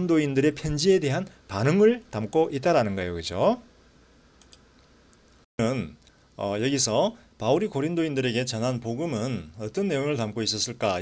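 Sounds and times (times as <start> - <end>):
man speaking: 0.0 - 3.7, 5.6 - 11.0
faint short clicks: 4.4 - 5.2.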